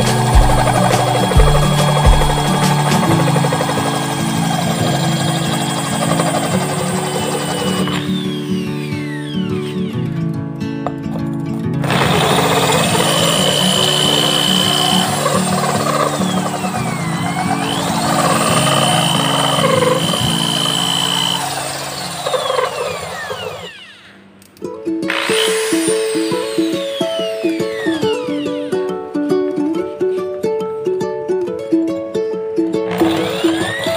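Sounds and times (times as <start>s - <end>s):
electric drill grinding ceramic: 0.0s - 10.3s, 11.8s - 24.3s, 25.1s - 28.8s, 32.9s - 33.9s
background music: 0.0s - 22.0s.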